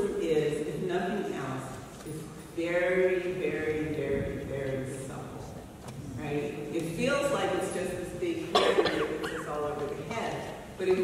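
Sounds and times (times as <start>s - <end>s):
woman speaking into a microphone: 0.0s - 11.0s
woman coughing: 8.5s - 9.6s.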